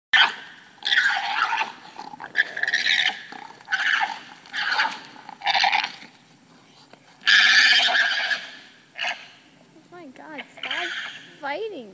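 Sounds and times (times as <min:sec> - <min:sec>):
alpacas screaming: 0:00.2 - 0:06.0, 0:07.2 - 0:09.4, 0:10.4 - 0:11.3.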